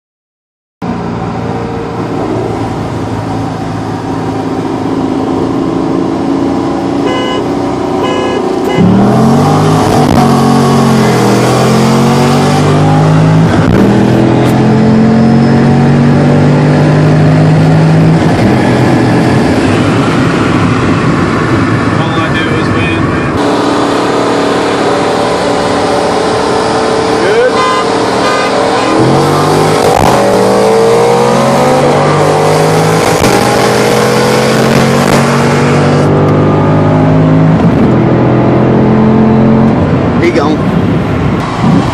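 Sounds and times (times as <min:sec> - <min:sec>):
car engine accelerating: 0:00.8 - 0:41.9.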